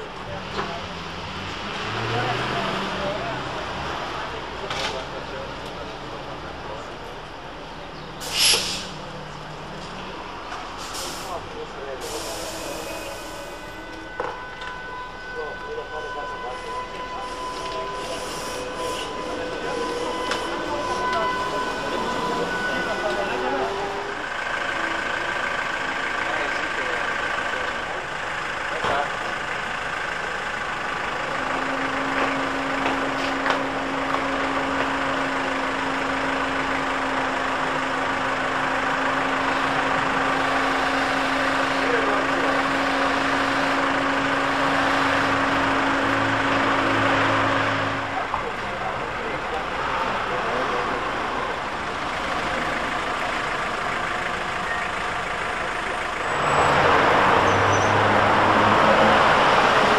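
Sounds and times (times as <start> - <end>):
trolleybus electric drive whine: 3.0 - 59.9.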